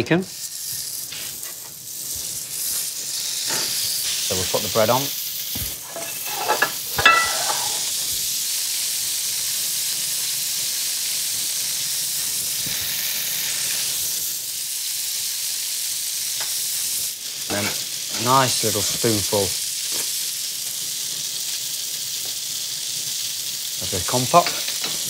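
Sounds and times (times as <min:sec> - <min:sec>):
fat sizzling in pans: 0:00.0 - 0:25.0
short knocks and clinks: 0:05.9 - 0:07.8.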